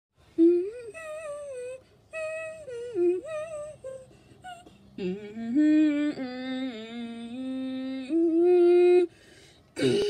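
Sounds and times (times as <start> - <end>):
person humming: 0.4 - 9.1, 9.8 - 10.0.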